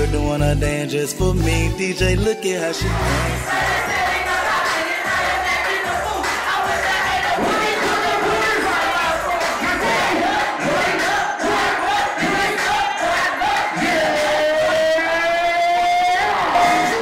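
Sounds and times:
loud music: 0.0s - 17.0s
crowd shouting and singing along: 2.7s - 17.0s.

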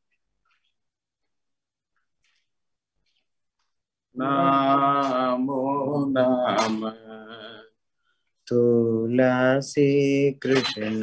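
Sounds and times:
man chanting a prayer: 4.2s - 7.8s, 8.5s - 11.0s.

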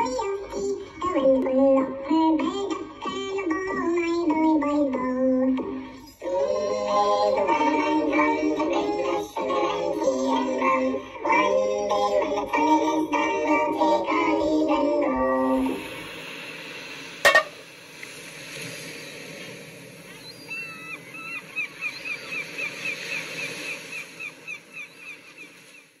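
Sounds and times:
person singing sea shanty: 0.0s - 17.8s
low hiss: 14.4s - 25.8s.

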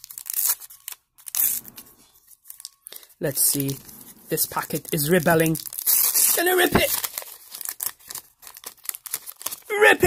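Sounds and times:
card packet tearing: 0.0s - 10.0s
packet crinkling: 0.0s - 10.0s.

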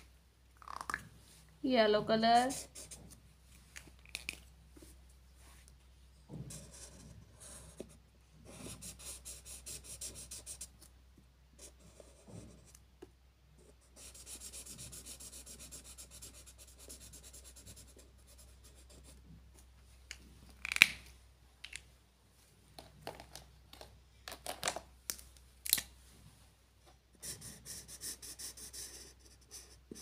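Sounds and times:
marker scratching on paper: 2.4s - 3.1s, 6.5s - 10.7s, 13.6s - 19.2s, 27.2s - 30.0s.

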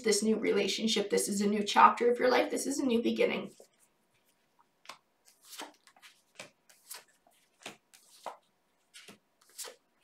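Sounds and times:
cards swishing and tapping: 3.6s - 10.0s.

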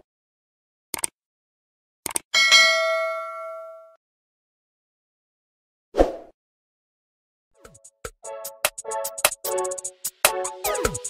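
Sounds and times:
notification bell ding: 2.4s - 4.0s.

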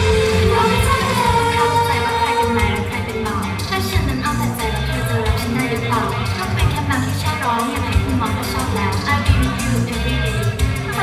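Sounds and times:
pop song over loudspeakers: 0.0s - 11.0s.

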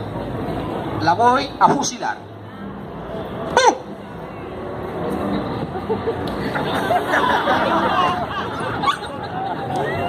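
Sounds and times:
crowd murmuring and chattering: 0.0s - 10.0s.

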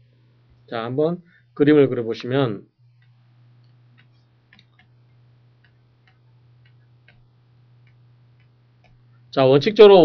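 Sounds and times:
low steady hum: 0.0s - 10.0s
faint ticking: 2.8s - 9.4s.

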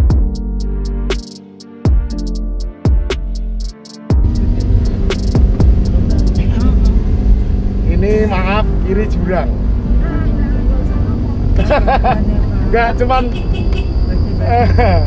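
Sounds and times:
car engine and tyres rumbling: 4.2s - 15.0s.

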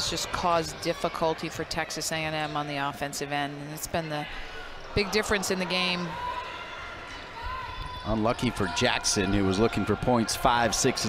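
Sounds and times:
arena background noise: 0.0s - 11.0s.

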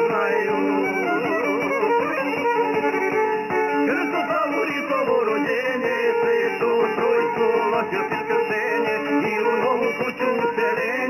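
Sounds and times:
plucked string accompaniment: 0.0s - 11.0s
violin playing with vibrato: 0.0s - 11.0s.

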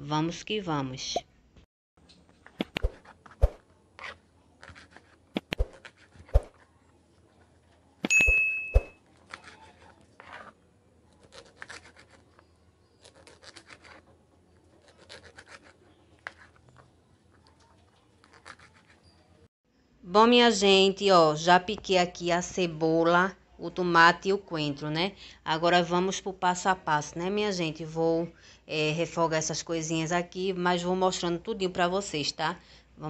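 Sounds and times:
knife slicing strokes: 2.6s - 6.7s, 8.8s - 12.4s, 13.0s - 14.1s, 14.8s - 16.8s, 18.2s - 19.0s
high ring: 8.1s - 9.0s.

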